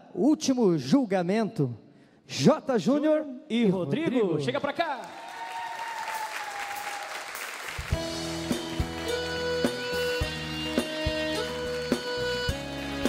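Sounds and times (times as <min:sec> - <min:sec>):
audience applauding: 0:05.0 - 0:12.5
band playing bass guitar and drums: 0:07.8 - 0:13.0.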